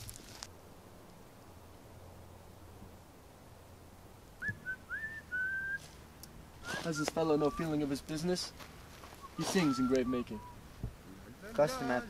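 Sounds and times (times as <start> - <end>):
man whistling a tune: 4.4 - 5.8, 9.2 - 10.6.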